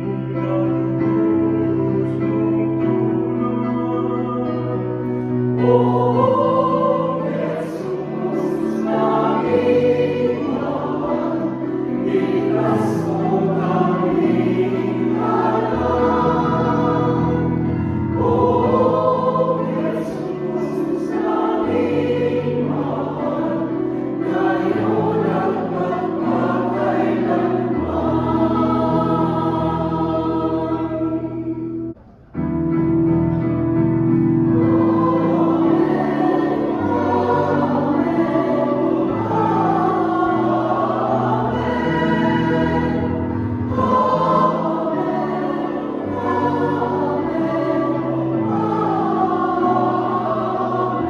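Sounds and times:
choir singing a hymn: 0.0s - 51.0s.

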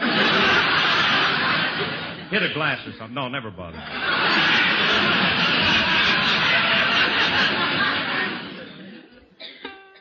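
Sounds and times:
studio audience laughing: 0.0s - 3.0s, 3.7s - 9.4s.

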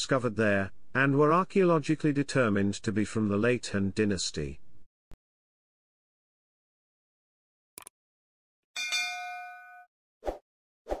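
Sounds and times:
bell-like ding: 8.8s - 9.9s.

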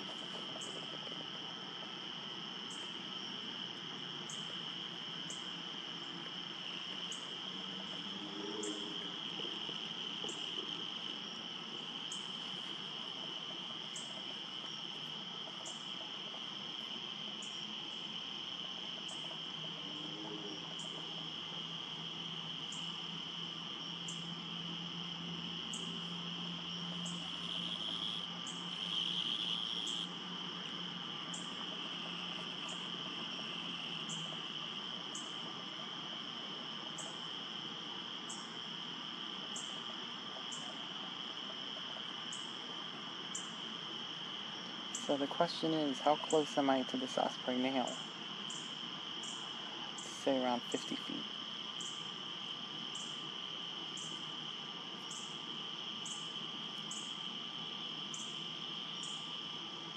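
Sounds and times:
insects trilling: 0.0s - 59.9s.

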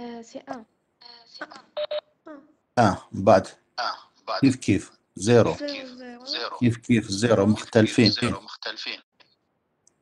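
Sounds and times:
person talking over video call: 2.8s - 9.3s.

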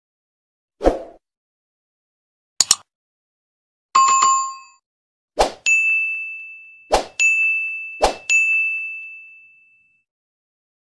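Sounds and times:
bright bell-like ding: 5.7s - 10.0s.

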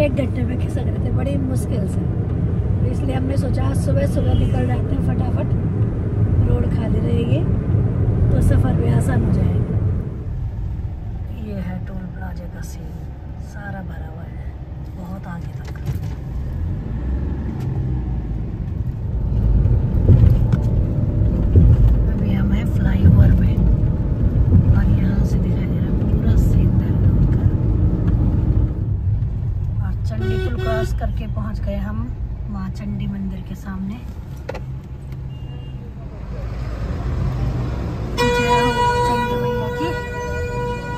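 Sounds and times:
car road and engine rumble: 0.0s - 40.9s.

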